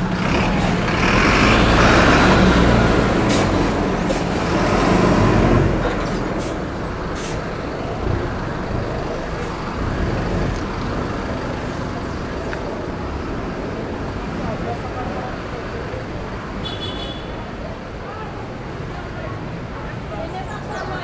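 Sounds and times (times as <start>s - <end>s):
bus diesel engine rumbling: 0.0s - 21.0s
street noise: 0.0s - 21.0s
air brake hisses: 6.4s - 7.5s.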